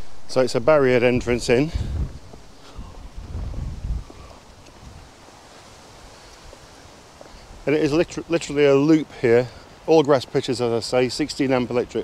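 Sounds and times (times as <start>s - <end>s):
wind buffeting microphone: 0.0s - 8.7s.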